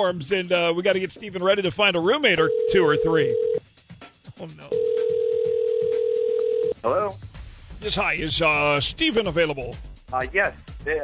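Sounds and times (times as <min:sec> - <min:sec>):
telephone ringback tone: 0:02.5 - 0:03.6, 0:04.7 - 0:06.8.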